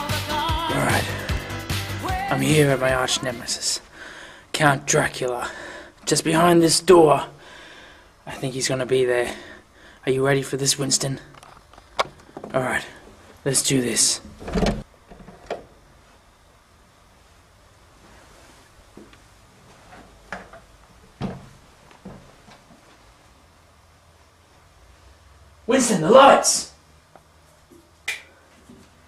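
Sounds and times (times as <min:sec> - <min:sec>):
faint room noise: 0:02.1 - 0:29.0.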